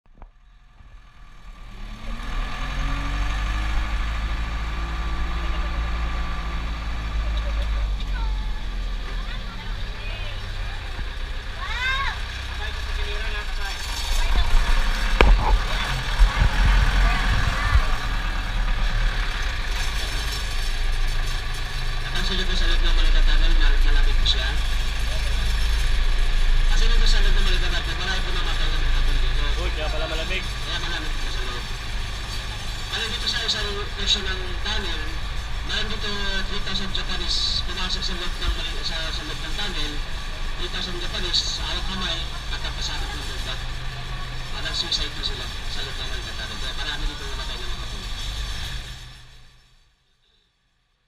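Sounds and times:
vehicle rumble in tunnel: 0.1s - 50.5s.

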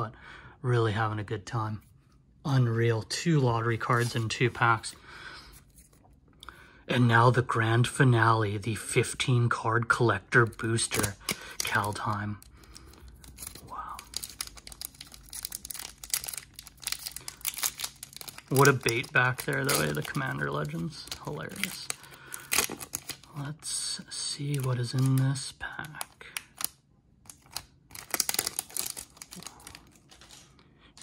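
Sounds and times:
foil wrapper crinkling: 10.4s - 23.3s, 24.4s - 26.7s, 27.3s - 30.5s.

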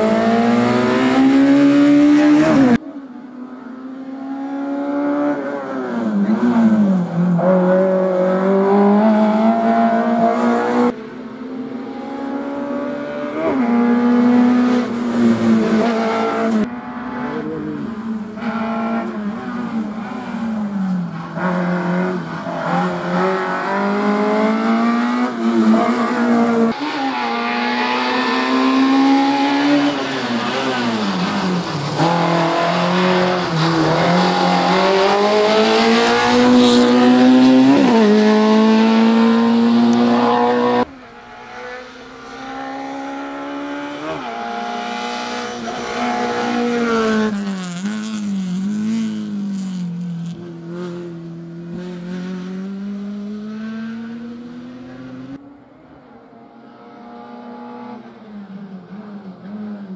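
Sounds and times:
car engine revving hard: 32.0s - 49.6s.

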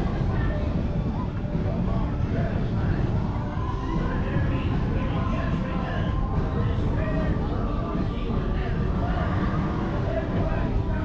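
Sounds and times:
crowd noise: 0.0s - 11.0s
low background noise: 0.0s - 11.0s.

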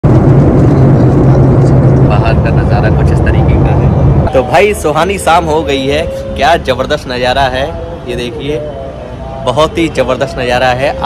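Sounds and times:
jet engines droning in cabin: 0.0s - 6.0s
low hum: 0.0s - 7.0s.

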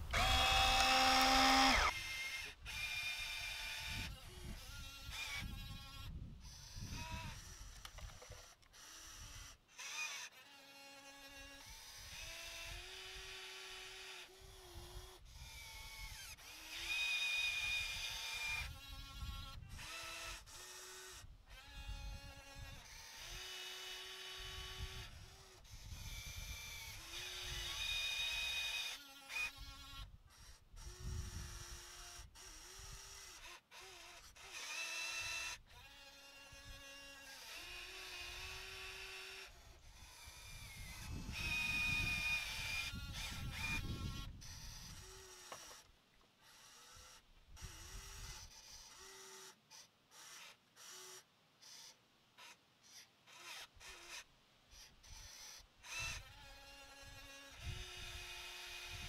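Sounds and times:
small electric motors whining: 0.0s - 59.0s.

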